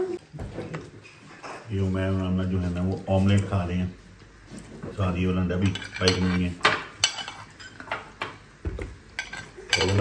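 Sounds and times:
spoons scraping a ceramic plate: 5.6 - 8.0.

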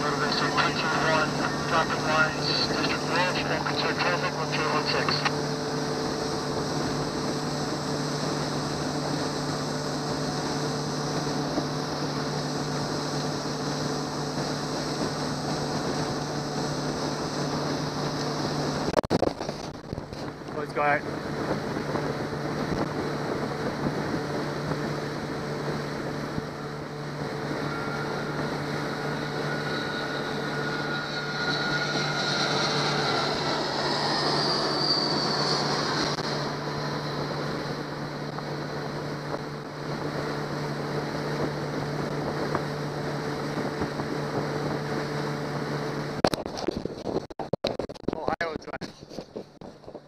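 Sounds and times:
water rushing along hull: 0.0 - 47.2
boat motor running: 0.0 - 50.0
wind crackling on microphone: 5.4 - 50.0.

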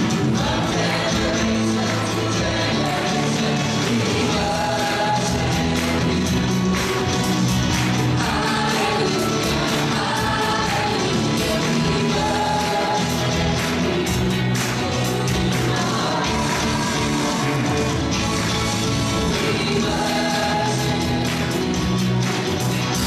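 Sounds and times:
group of singers: 0.0 - 22.2
band of guitars bass and drums: 0.0 - 23.0.

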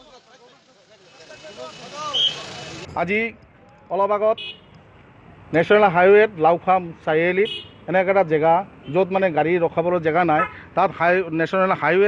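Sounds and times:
passing vehicle: 0.0 - 3.6.

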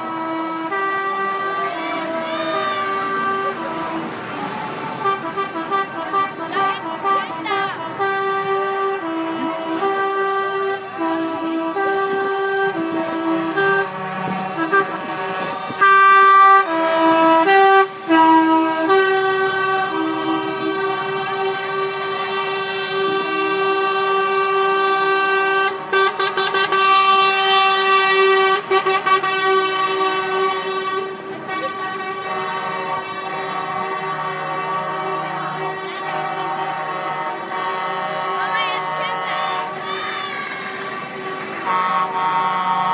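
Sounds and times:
truck air horns: 0.0 - 42.9.

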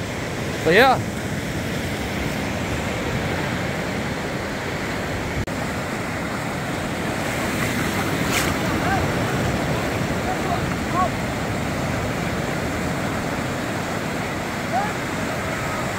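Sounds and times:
waves washing onto sand: 0.0 - 15.9.

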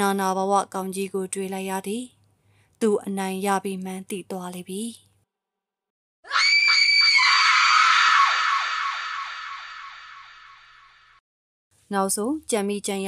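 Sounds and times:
high-pitched scream with echo: 6.3 - 11.2.

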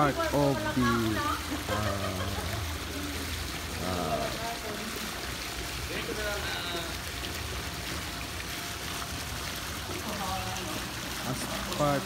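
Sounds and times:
pool water sloshing and lapping: 0.0 - 12.0.

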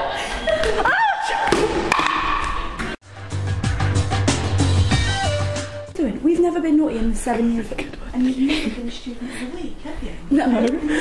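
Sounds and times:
girl squealing: 0.8 - 1.4.

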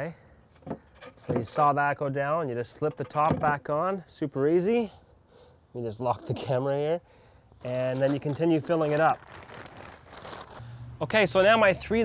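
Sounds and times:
plastic bag crinkling: 7.6 - 10.6.

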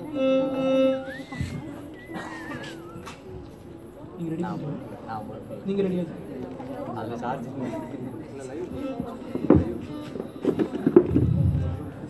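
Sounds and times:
violin playing: 0.0 - 3.8, 8.4 - 12.0.

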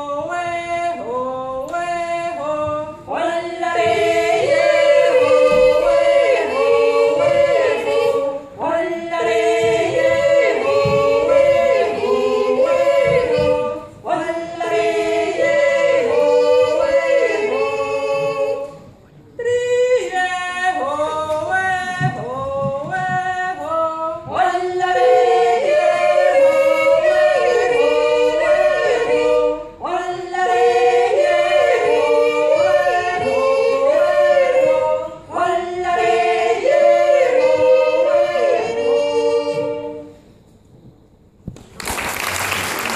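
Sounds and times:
women yodelling in harmony: 0.0 - 18.8, 19.4 - 40.1.

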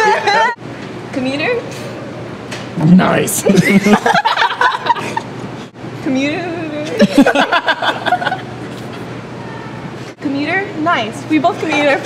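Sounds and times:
young women laughing: 0.0 - 0.6, 3.4 - 5.4, 6.9 - 9.0.

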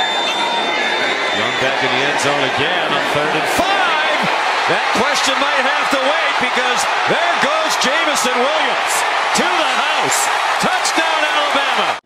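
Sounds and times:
stadium crowd noise: 0.0 - 12.0
commentator talking: 1.4 - 12.0.

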